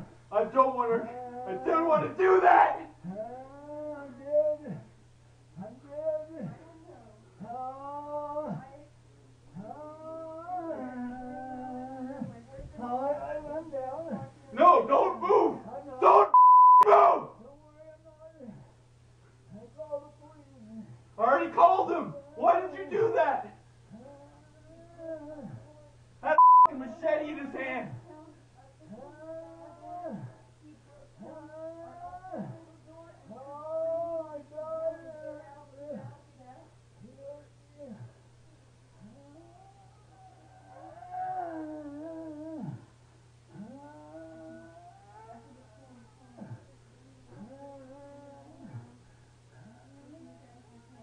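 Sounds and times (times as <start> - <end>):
people shouting: 1.6 - 2.9.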